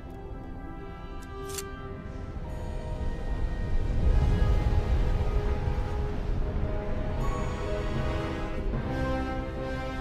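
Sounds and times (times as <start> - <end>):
orchestral film score: 0.0 - 10.0.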